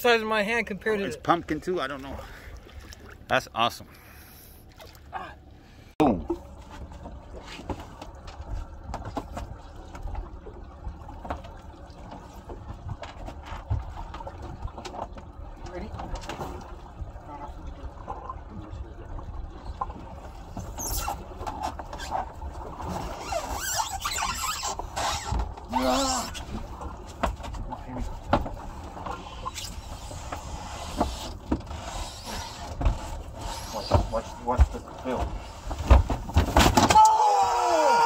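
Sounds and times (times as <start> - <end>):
sea: 0.0 - 38.0
wind: 0.0 - 38.0.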